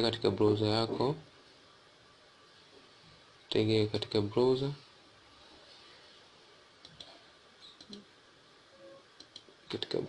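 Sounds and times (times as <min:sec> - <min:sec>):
faint computer mouse clicks: 0:06.8 - 0:08.0, 0:09.2 - 0:09.5.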